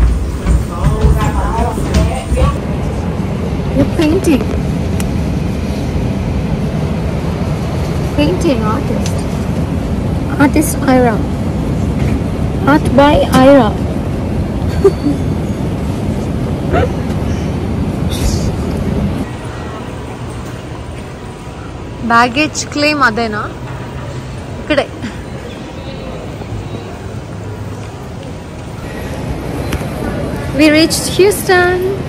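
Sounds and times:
airliner cabin drone: 0:00.0 - 0:32.0
terminal hall hum and hiss: 0:00.0 - 0:32.0.

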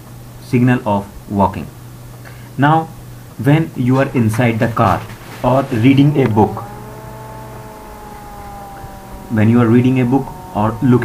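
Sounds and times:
car road and engine rumble: 0:02.9 - 0:11.0
multi-tone whine: 0:04.3 - 0:11.0.

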